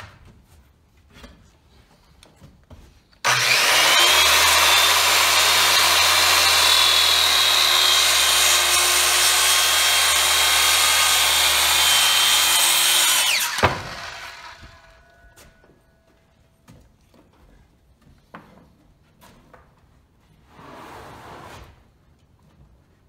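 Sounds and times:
circular saw cutting wood: 0:03.2 - 0:15.4.

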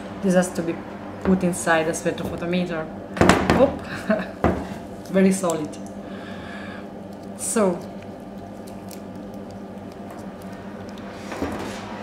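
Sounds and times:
person laughing: 0:03.8 - 0:04.4.

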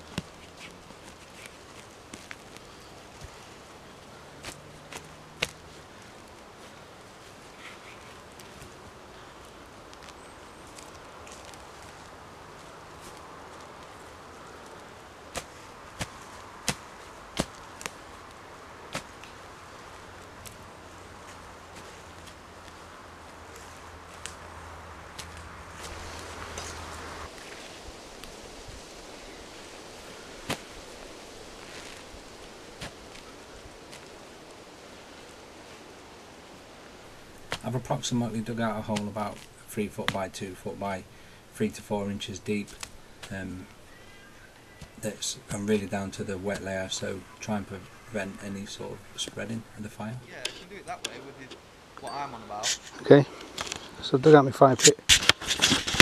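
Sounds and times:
faint hiss: 0:00.0 - 0:56.0.

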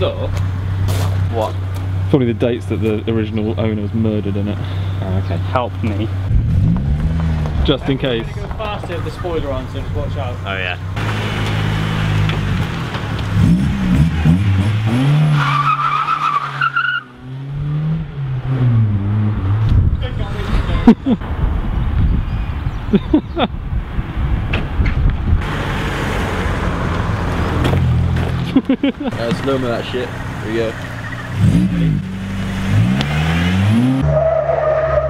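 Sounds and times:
road noise: 0:00.0 - 0:35.0
car engine revving: 0:00.2 - 0:20.9, 0:25.4 - 0:35.0.

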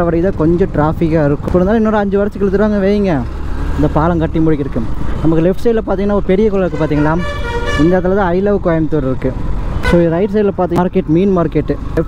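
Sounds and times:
man talking: 0:00.0 - 0:12.0
road and wind noise: 0:00.0 - 0:12.0.

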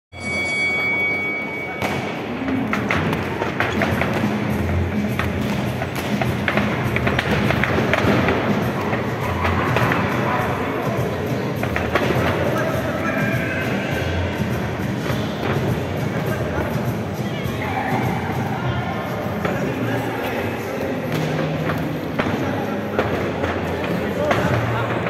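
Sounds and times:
steady high tone: 0:00.1 - 0:02.6
background music: 0:00.2 - 0:25.0
voices: 0:00.2 - 0:25.0.

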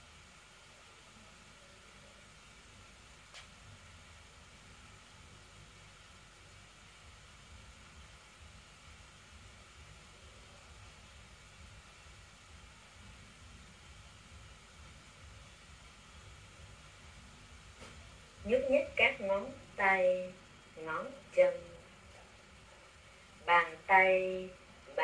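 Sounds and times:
faint steady hiss: 0:00.0 - 0:25.0.

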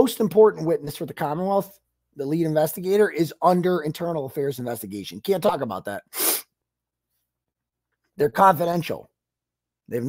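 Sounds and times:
man's sharp breathy burst: 0:06.1 - 0:06.6.

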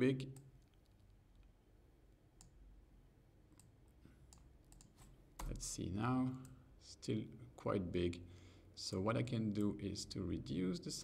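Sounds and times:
computer mouse clicks: 0:03.5 - 0:05.6.

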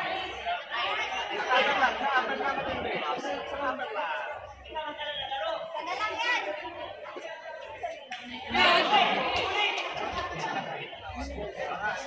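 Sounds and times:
crowd chattering in a large hall: 0:00.0 - 0:12.0.

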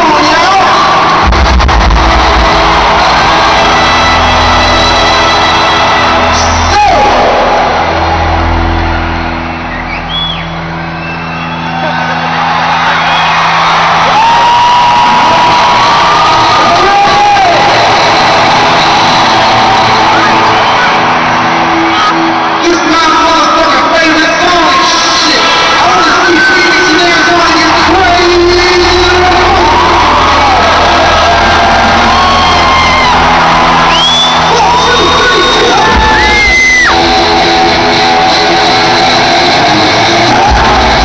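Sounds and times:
people whooping: 0:00.0 - 0:23.4, 0:25.2 - 0:41.0
crowd cheering: 0:00.0 - 0:41.0
live band music over loudspeakers: 0:00.0 - 0:41.0.

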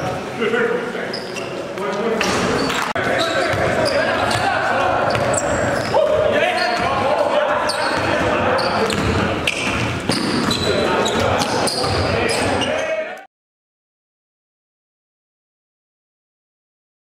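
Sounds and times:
players' voices: 0:00.0 - 0:13.3
sneakers squeaking on gym floor: 0:01.0 - 0:13.1
basketball dribbling: 0:02.6 - 0:07.0, 0:07.7 - 0:12.5.

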